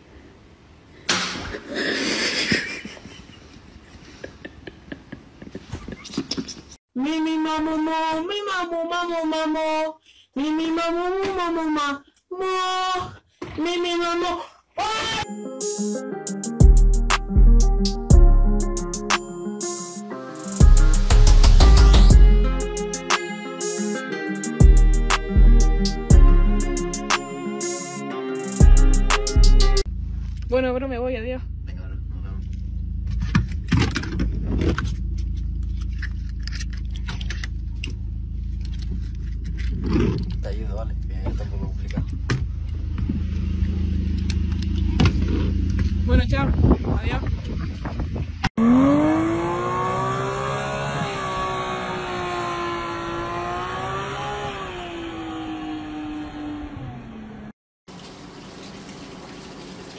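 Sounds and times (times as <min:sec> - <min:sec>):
low engine-like hum: 0:29.9 - 0:46.7
sports car engine revving: 0:48.6 - 0:57.5.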